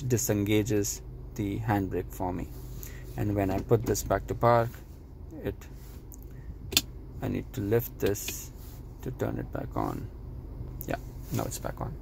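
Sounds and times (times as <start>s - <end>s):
parking brake switch click: 6.7s - 6.9s.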